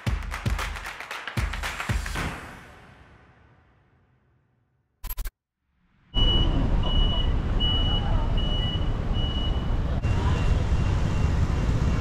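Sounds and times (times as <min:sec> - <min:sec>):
traffic rumble: 0:06.2 - 0:12.0.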